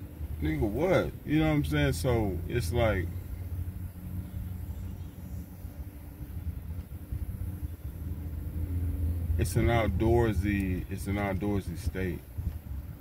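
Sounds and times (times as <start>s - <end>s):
low cabin hum: 0.0s - 13.0s.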